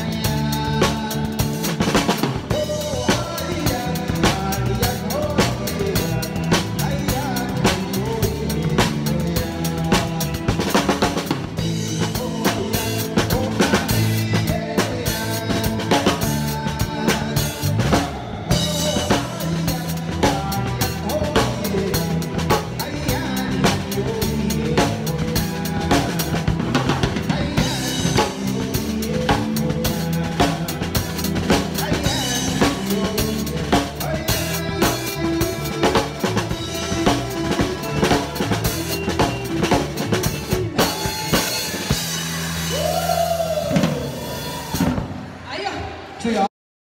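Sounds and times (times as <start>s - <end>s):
drum kit playing: 0.0s - 45.4s
live band music: 0.0s - 45.8s.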